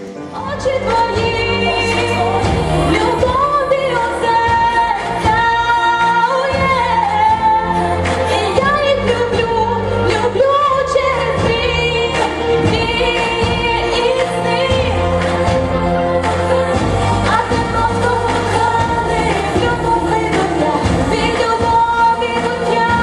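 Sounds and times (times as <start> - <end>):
instrumental accompaniment with beat: 0.0 - 23.0
woman singing into microphone: 0.1 - 23.0.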